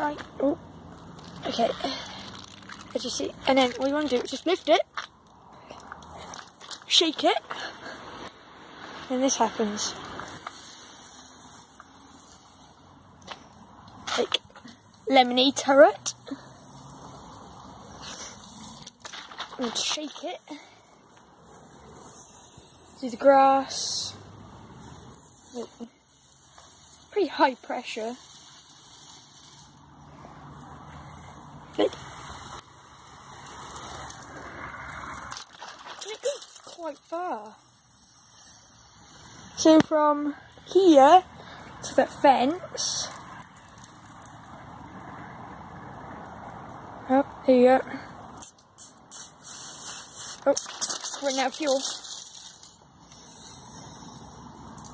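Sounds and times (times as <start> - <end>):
fizzy drink spraying hiss: 7.8 - 12.7, 21.5 - 30.1, 48.8 - 54.9.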